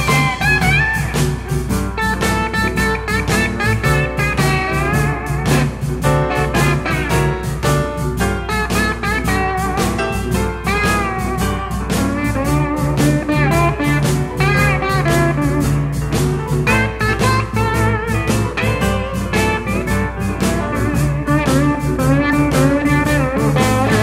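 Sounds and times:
bass and drums steady beat: 0.0 - 24.0
lead guitar with bent notes: 0.0 - 24.0.

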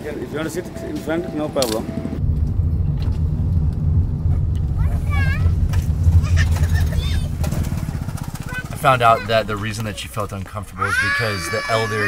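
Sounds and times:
low road rumble: 0.0 - 12.0
car engine running: 1.8 - 11.0.

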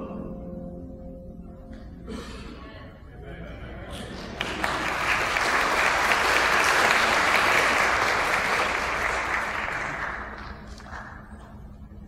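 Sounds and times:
congregation applauding: 4.0 - 11.7.

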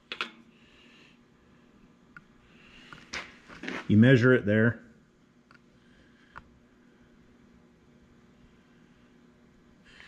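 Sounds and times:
person speaking: 3.7 - 4.9.

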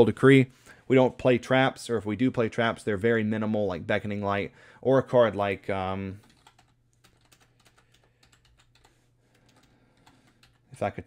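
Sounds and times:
computer keyboard typing: 6.2 - 10.7.

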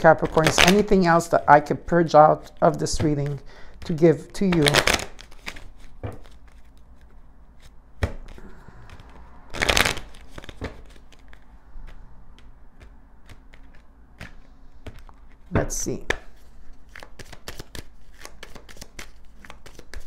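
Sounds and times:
cards being shuffled by hand: 0.0 - 20.0.

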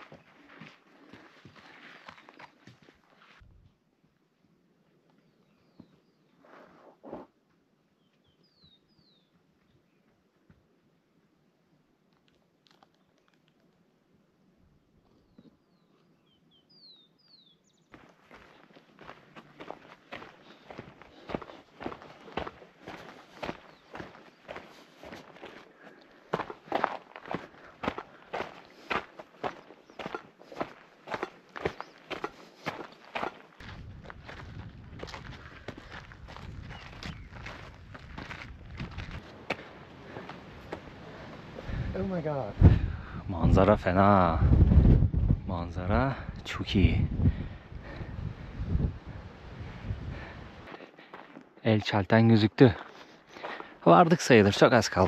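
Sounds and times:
footsteps crunching on gravel: 0.0 - 3.4, 18.0 - 41.6, 50.7 - 55.0
faint bird chirps: 7.9 - 10.2
low wind rumble on microphone: 33.6 - 50.7.

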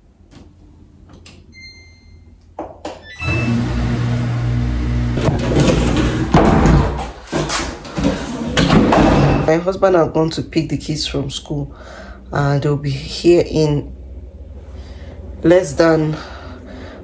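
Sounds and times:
washing machine humming: 3.0 - 7.0
short electronic beep: 3.1 - 3.8
cupboard doors scraping and knocking: 5.2 - 9.5.

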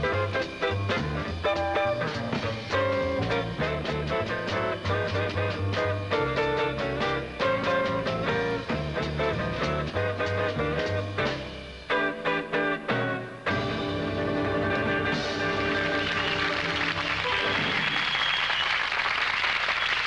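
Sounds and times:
upright bass walking line: 0.0 - 17.6
drums playing swing: 0.0 - 18.3.

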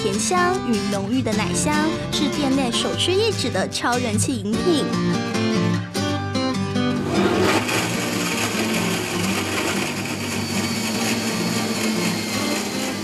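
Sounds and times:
countertop blender running: 6.9 - 13.0.

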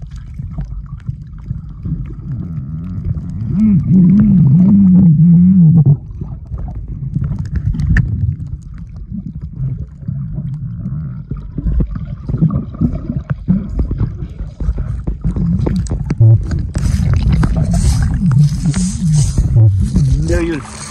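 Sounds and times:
churning gurgling water: 0.0 - 20.9
clicks and knocks underwater: 0.0 - 20.9
hissing fizzing bubbles: 6.1 - 20.9.

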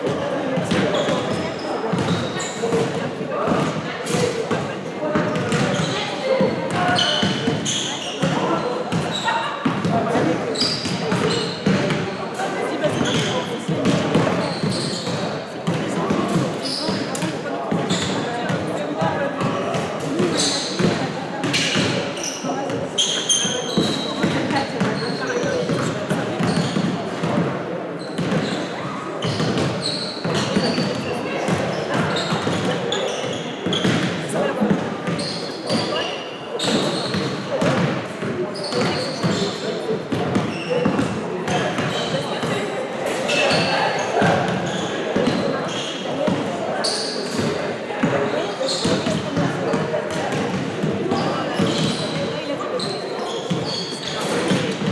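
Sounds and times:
basketball bouncing on court: 0.1 - 4.6, 5.2 - 12.0, 12.9 - 22.0, 22.7 - 27.5, 28.1 - 28.6, 29.2 - 36.0, 36.6 - 39.5, 40.1 - 42.5, 43.5 - 46.4, 47.3 - 52.2, 52.8 - 54.9
basketball shoe squeaks: 0.6 - 4.6, 5.2 - 27.0, 28.0 - 37.9, 38.5 - 50.4, 51.1 - 54.9.

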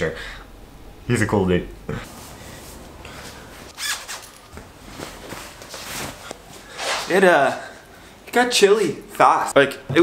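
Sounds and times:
clothing rustling: 2.1 - 8.0
fabric swish: 3.7 - 7.2.

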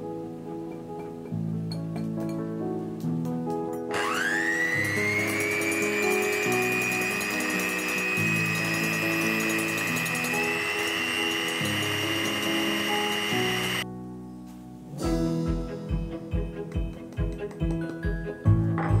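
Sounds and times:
electric hand mixer whirring: 3.9 - 13.8.

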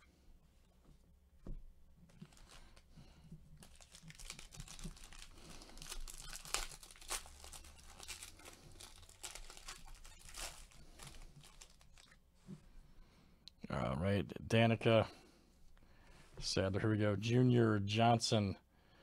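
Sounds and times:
foil wrapper tearing and crinkling: 2.2 - 2.8, 3.6 - 12.2.

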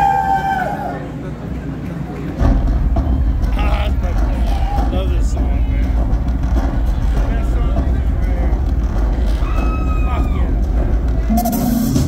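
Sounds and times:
crowd chatter: 0.0 - 12.0
deep rumble from speakers: 2.4 - 12.0.

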